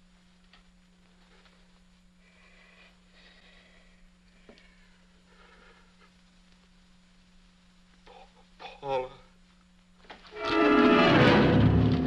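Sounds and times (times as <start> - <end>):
man breathing laboriously: 1.2 - 6.3.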